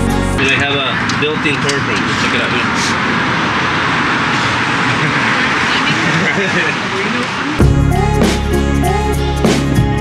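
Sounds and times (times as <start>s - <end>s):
street noise: 0.0s - 10.0s
group of people talking: 0.4s - 3.0s, 4.4s - 7.6s.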